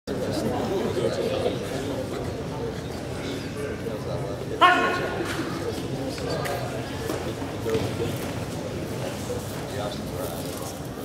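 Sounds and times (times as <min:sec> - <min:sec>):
people chattering in a hall: 0:00.1 - 0:11.0.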